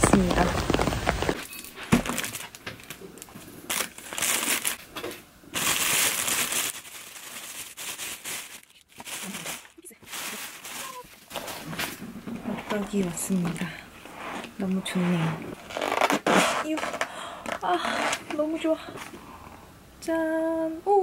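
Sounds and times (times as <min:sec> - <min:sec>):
plastic bag crinkling: 0:00.0 - 0:13.7.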